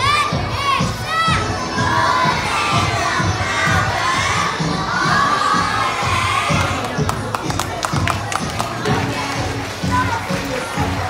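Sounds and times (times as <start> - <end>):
children shouting and cheering: 0.0 - 11.0.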